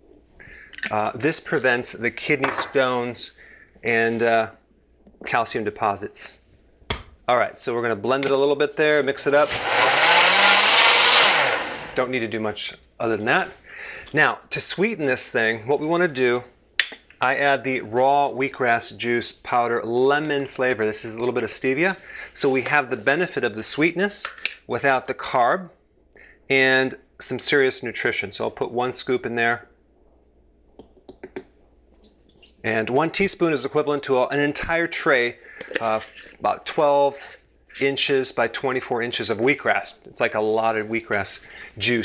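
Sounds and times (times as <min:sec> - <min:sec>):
blender whirring: 0:09.3 - 0:12.0.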